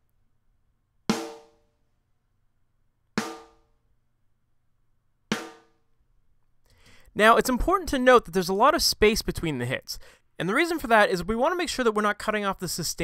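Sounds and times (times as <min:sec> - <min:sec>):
snare drum hits: 0:03.2 - 0:03.6, 0:05.3 - 0:05.7.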